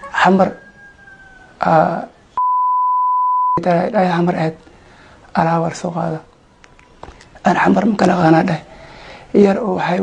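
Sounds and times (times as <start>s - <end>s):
censor bleep: 2.4s - 3.6s.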